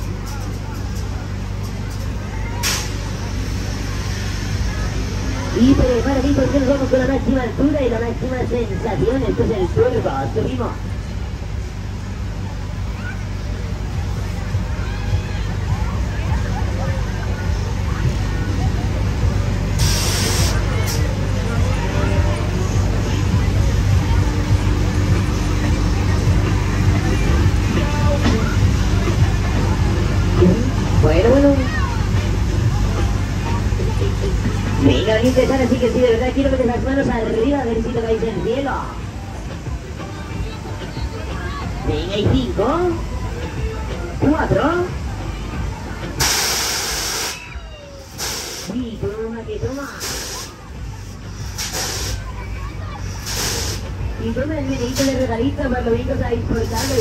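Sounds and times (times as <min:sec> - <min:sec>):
crowd babble: 0:00.0 - 0:57.0
fairground ride rumbling: 0:00.0 - 0:57.0
loud burst of hiss: 0:02.6 - 0:05.5, 0:19.6 - 0:21.3, 0:46.2 - 0:48.8, 0:49.9 - 0:52.4, 0:53.0 - 0:54.0.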